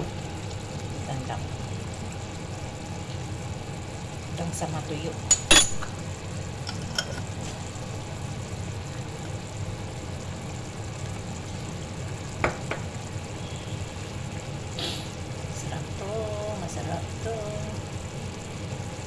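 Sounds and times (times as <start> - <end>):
sauce simmering in a frying pan: 0.0 - 19.0.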